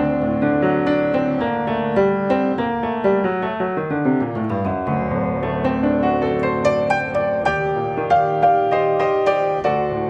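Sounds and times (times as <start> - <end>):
fast piano music: 0.0 - 10.0.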